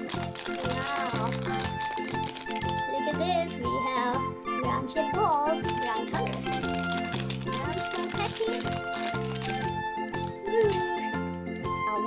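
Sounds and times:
candy wrapper crinkling: 0:00.0 - 0:03.6, 0:05.5 - 0:11.2
background music with steady beat: 0:00.0 - 0:12.0.

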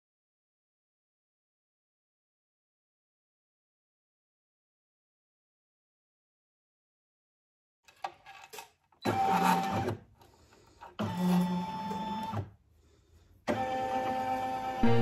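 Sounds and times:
machine motor whirring: 0:09.0 - 0:10.0.

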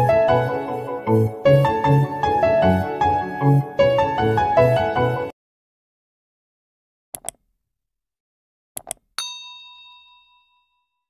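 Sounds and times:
bright bell ding: 0:09.2 - 0:11.0.

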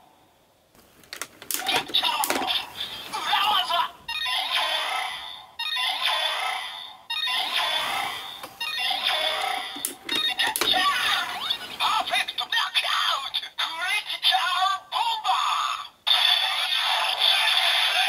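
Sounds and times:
recorded announcer voice: 0:01.6 - 0:04.0, 0:10.1 - 0:15.4.

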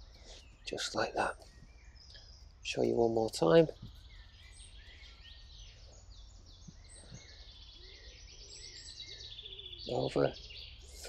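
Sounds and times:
songbirds chirping and trilling: 0:00.0 - 0:11.0.

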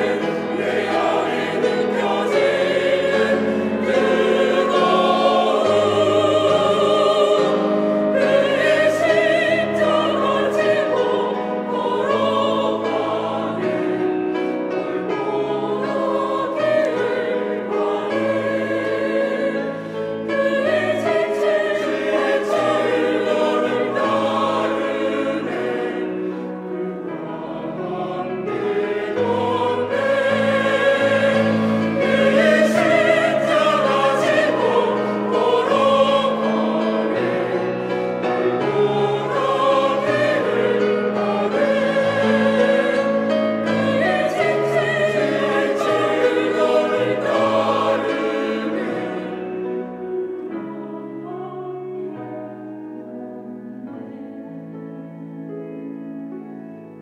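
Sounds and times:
choir singing: 0:00.0 - 0:55.8.

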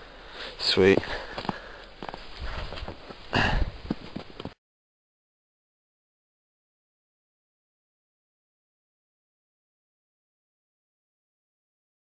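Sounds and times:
footsteps crunching snow: 0:00.4 - 0:04.6.

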